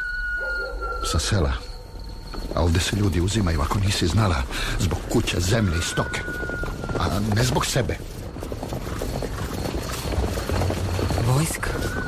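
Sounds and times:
horses' hooves clip-clopping: 1.9s - 12.0s.

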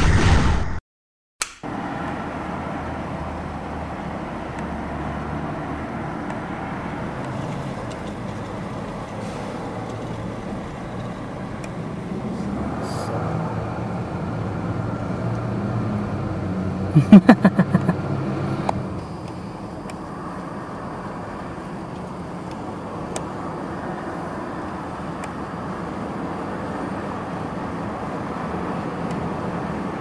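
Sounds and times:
street traffic noise: 1.6s - 30.0s
low engine hum: 1.7s - 30.0s.

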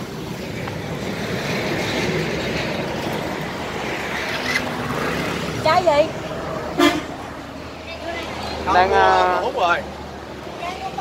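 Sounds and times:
roadside traffic noise: 0.0s - 11.0s
vehicle horn beep: 6.8s - 7.1s.

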